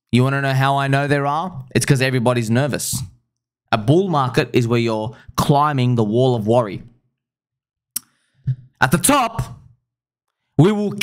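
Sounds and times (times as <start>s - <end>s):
man speaking: 0.1s - 6.9s, 8.8s - 9.7s, 10.6s - 11.0s.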